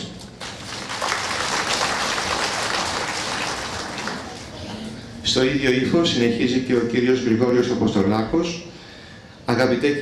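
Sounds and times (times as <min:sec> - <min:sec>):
audience applauding: 0:00.4 - 0:04.6.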